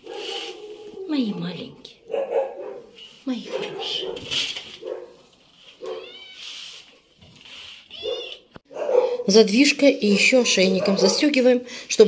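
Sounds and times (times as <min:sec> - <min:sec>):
kittens meowing: 0:05.8 - 0:06.6, 0:07.8 - 0:08.6.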